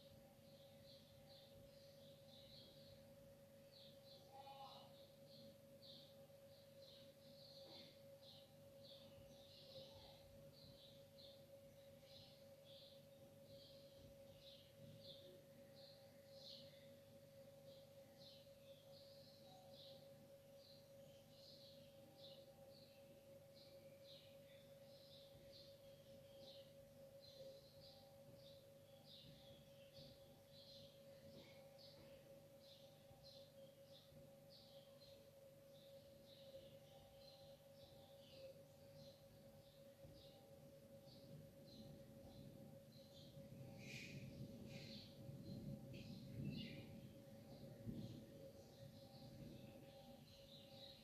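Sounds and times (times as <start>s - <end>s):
faint high chirps: 0.0s - 51.0s
low hum: 0.0s - 51.0s.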